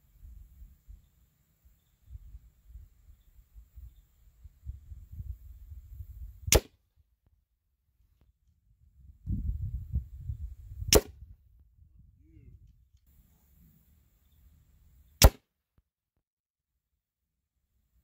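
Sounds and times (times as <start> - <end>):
airgun shots cracking: 6.5 - 6.7, 10.9 - 11.2, 15.2 - 15.4.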